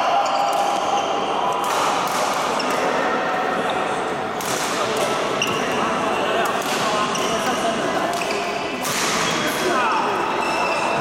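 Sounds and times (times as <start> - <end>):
murmur of voices: 0.0 - 11.0
racket hitting shuttlecock: 1.6 - 3.0, 6.4 - 7.3.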